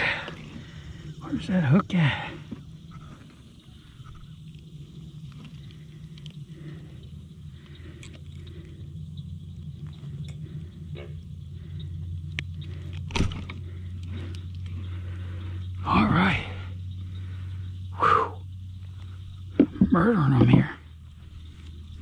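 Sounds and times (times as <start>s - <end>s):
steady low hum: 0.0s - 22.0s
frog croaking: 6.2s - 22.0s.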